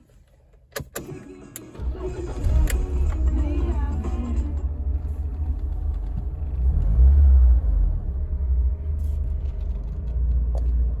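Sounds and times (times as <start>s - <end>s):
car cabin engine and road rumble: 0.0s - 11.0s.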